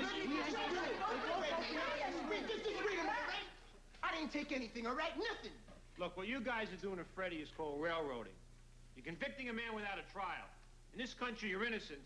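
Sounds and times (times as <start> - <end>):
several voices chattering: 0.0 - 3.8.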